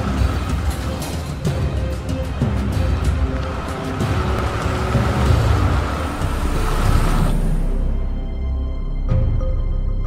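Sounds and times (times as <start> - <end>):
car engine and tyres rumbling: 0.0 - 8.8
dramatic music score: 0.0 - 10.0.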